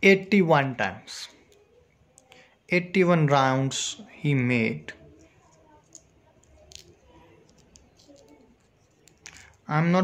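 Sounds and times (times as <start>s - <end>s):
soft rustling of thread winding: 5.0s - 9.7s.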